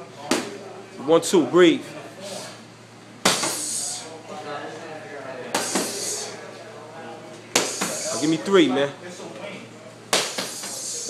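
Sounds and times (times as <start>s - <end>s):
boxing gloves smacking mitts: 3.2s - 3.7s, 5.5s - 6.1s, 7.5s - 8.2s, 10.1s - 10.8s.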